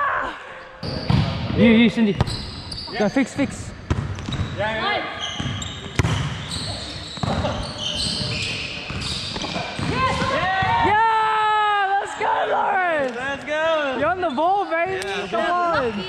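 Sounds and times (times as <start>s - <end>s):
sneaker squeaks on court: 2.1s - 10.4s
volleyball being hit: 5.4s - 6.4s, 8.9s - 10.9s
players shouting and cheering: 9.8s - 16.0s.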